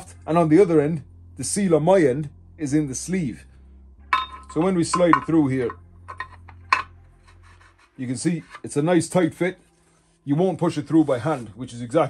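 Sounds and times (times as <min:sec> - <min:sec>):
metal shaft scraping and clicking: 0:04.2 - 0:08.9.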